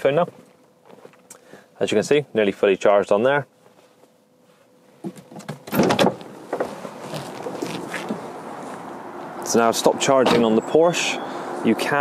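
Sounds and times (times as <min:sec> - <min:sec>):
outdoor background noise: 0:00.0 - 0:12.0
car door opening and shutting: 0:05.1 - 0:08.4, 0:10.1 - 0:10.6.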